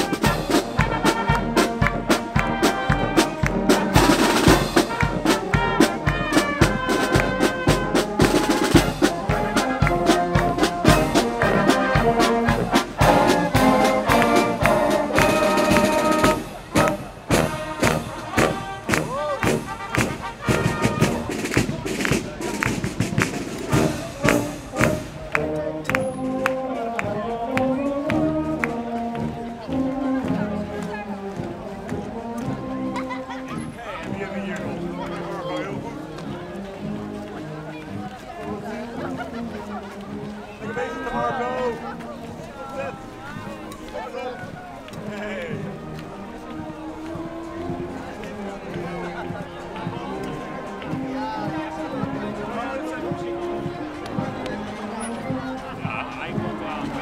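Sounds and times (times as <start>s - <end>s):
bass drum and snare drums: 0.0s - 26.6s
brass melody: 0.0s - 57.0s.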